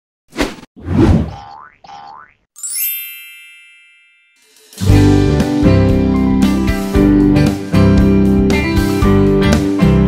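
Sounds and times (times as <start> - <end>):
bright bell-like chime: 2.6 - 4.9.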